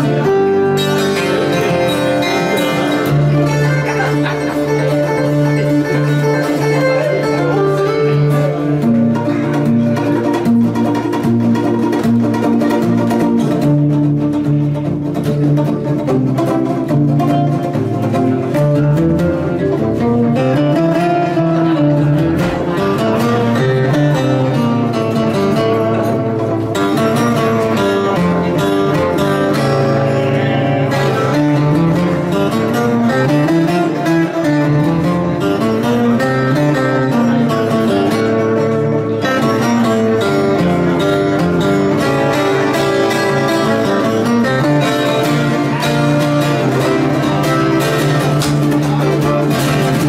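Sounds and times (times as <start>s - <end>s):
acoustic guitar melody: 0.0s - 50.0s.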